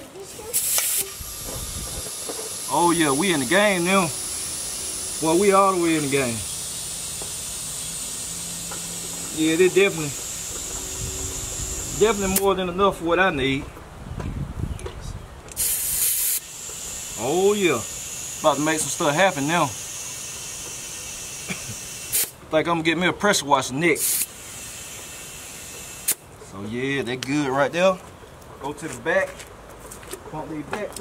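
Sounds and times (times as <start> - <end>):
compressed air hissing: 0.5 - 12.6, 15.5 - 22.4, 24.0 - 26.2.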